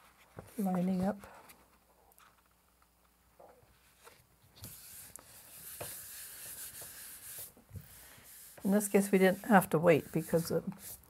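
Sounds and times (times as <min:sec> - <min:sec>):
hand rubbing paper: 0:03.8 - 0:11.0.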